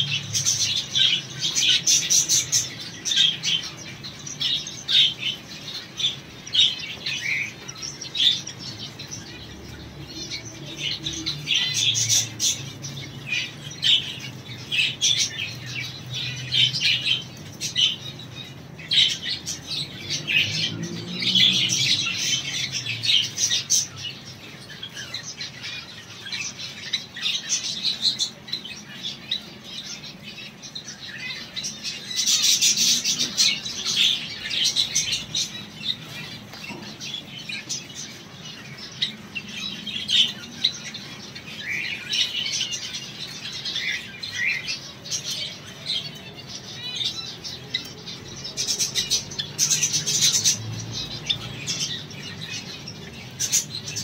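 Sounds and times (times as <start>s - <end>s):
cage birds chirping: 0.0s - 54.0s.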